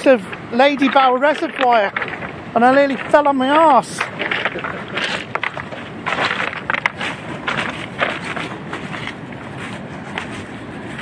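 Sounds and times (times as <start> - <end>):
footsteps crunching on pebbles: 0.0 - 10.6
steady background rush: 0.0 - 11.0.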